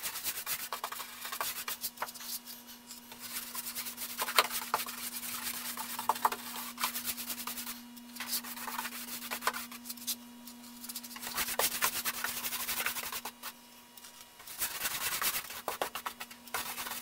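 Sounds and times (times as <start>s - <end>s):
steady low hum: 0.0s - 17.0s
paintbrush bristles scratching: 3.2s - 13.6s.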